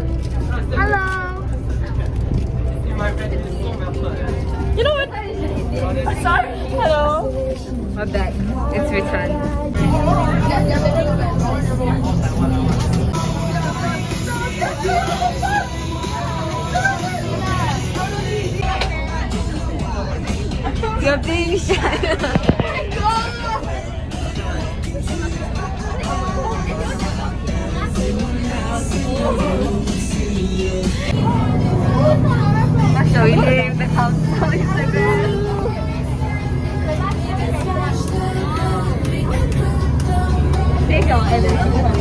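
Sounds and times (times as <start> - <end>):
bus engine and tyres rumbling: 0.0 - 42.0
passengers chattering faintly: 0.0 - 42.0.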